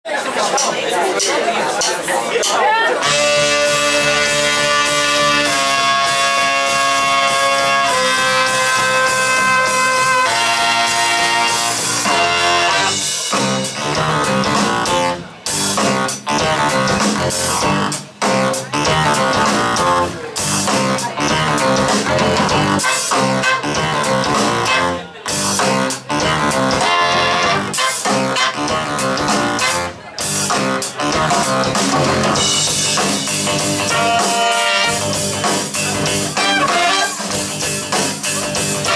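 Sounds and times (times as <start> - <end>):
live band playing: 0.1 - 38.9
electric guitar: 3.0 - 38.9.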